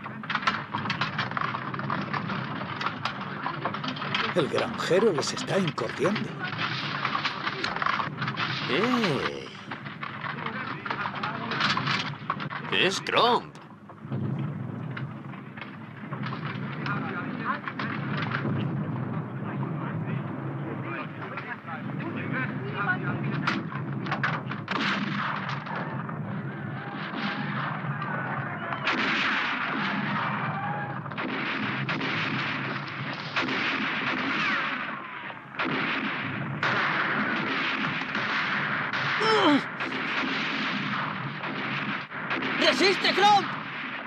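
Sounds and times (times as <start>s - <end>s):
gunshots in bursts: 0.0s - 19.3s, 23.2s - 26.4s, 27.0s - 44.0s.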